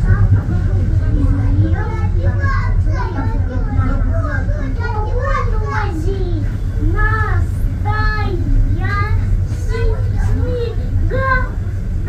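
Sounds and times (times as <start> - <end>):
children chattering and calling out: 0.0 - 12.0
low train rumble: 0.0 - 12.0.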